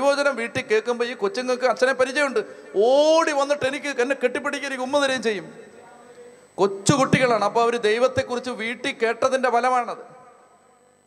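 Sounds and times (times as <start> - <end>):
man preaching through a microphone: 0.0 - 10.5
faint steady hum: 0.0 - 11.0.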